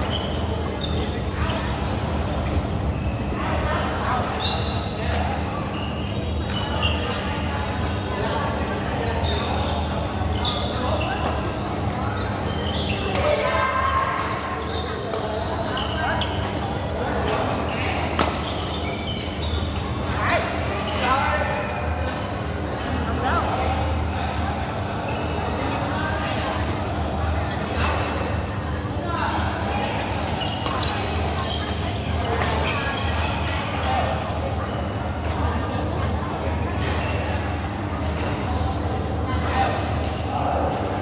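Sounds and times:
background chatter: 0.0 - 41.0.

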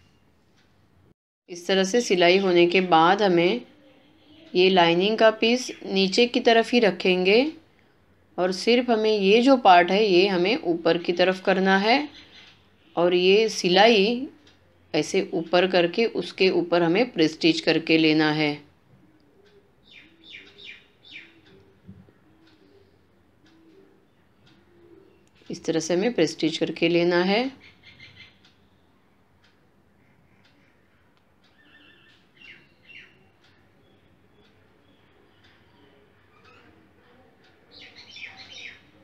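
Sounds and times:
low cooing bird call: 19.0 - 25.3
small bird chirping: 19.3 - 25.5, 30.0 - 39.0.

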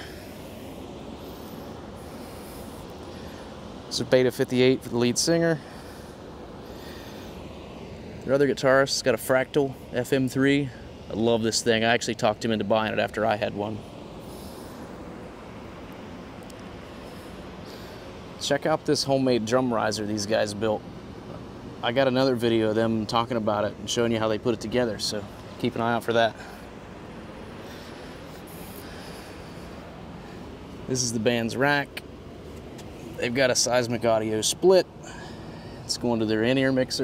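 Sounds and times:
faint hiss: 0.0 - 12.1, 12.7 - 23.2
low outdoor rumble: 0.0 - 37.0
speech: 3.9 - 5.6, 8.2 - 13.8, 18.4 - 20.8, 21.8 - 26.4, 30.9 - 32.0, 33.2 - 34.9, 35.9 - 37.0.

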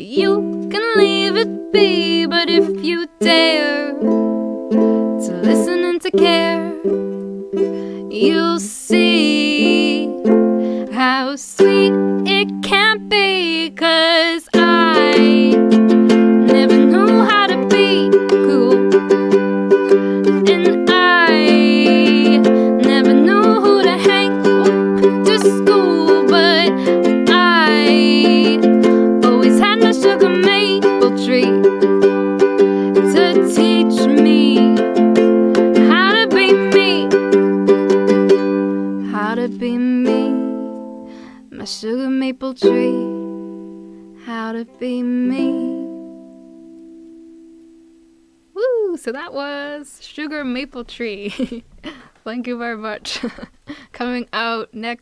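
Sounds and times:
woman singing: 0.0 - 4.2, 5.2 - 7.2, 8.0 - 37.6, 39.0 - 40.8, 41.4 - 43.3, 44.2 - 46.2
strummed ukulele: 0.0 - 48.8.

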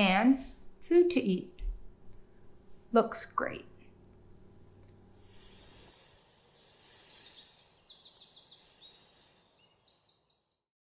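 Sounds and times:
steady high hiss: 4.9 - 10.5.

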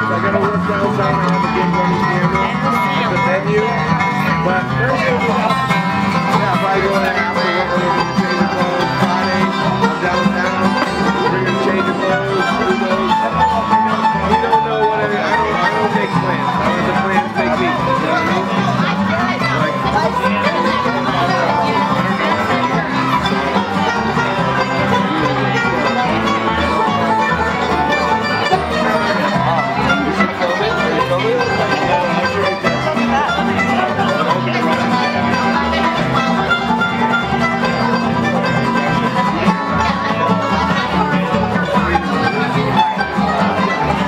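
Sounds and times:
acoustic guitars picking: 0.0 - 44.0
banjo picking: 0.0 - 44.0.

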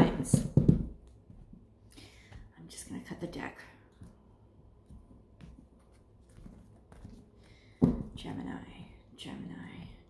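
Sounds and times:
woman speaking: 0.0 - 0.6, 2.5 - 3.8, 8.1 - 10.0.

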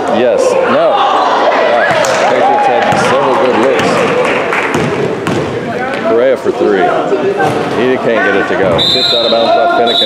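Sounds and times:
basketball bouncing on gym floor: 4.7 - 5.6.

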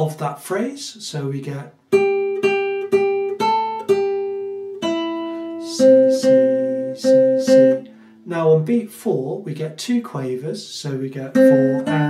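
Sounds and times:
fingerstyle classical guitar: 1.9 - 8.9, 11.2 - 12.0.

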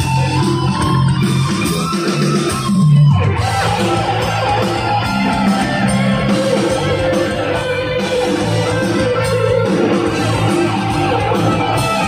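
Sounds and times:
rock band playing loudly: 0.0 - 12.0.

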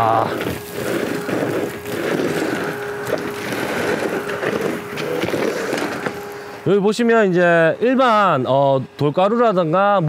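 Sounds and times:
vacuum sucking up debris: 0.0 - 6.8.

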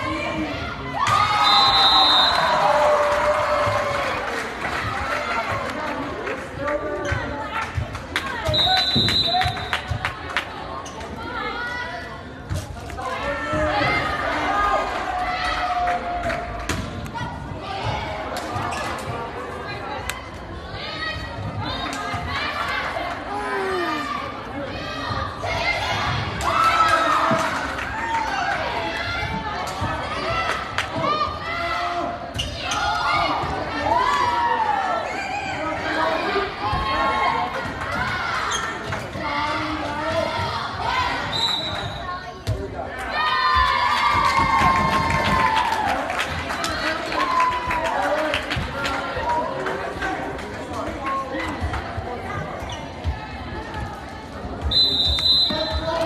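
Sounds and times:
crowd chatter: 0.0 - 56.0
spectators shouting and cheering: 0.0 - 56.0
referee's whistle: 1.3 - 2.6, 8.5 - 9.7, 41.3 - 42.1, 54.7 - 55.9.

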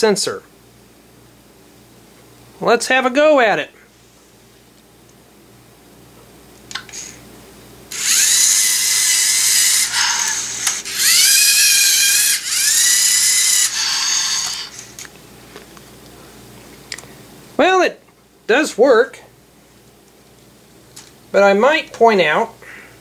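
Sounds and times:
servo motors whining: 7.9 - 15.0.

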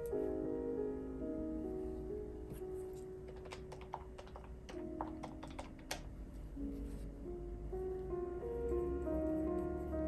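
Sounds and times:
quiet piano music: 0.0 - 10.0
pen tapping on paper: 3.3 - 6.1.

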